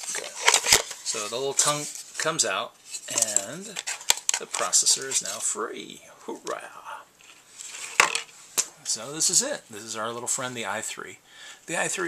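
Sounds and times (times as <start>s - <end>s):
light plastic rustling: 0.0s - 5.6s, 7.2s - 9.6s.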